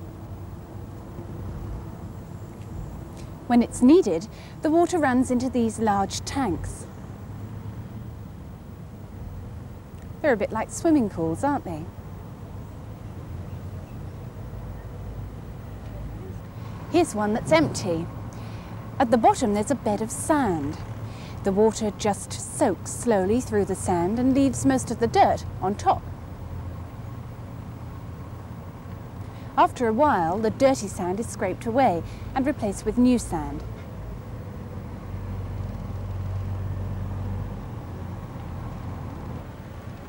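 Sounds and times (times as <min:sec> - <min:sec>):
machine engine droning: 0:00.0 - 0:33.6
low outdoor rumble: 0:00.0 - 0:40.0.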